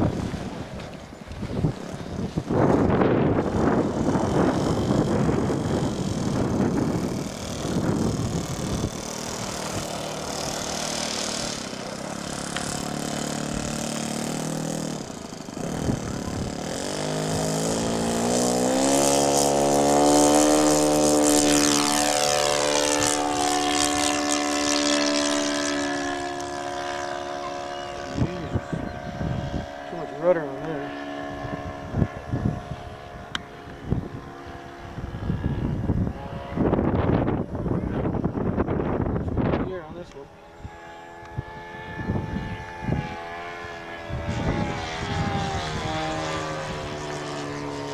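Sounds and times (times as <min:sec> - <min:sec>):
model plane engine and propeller: 0:00.0 - 0:47.9.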